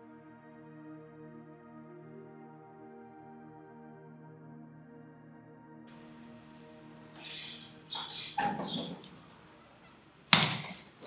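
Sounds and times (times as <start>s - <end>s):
high-pitched animal cries: 7.2s - 10.0s.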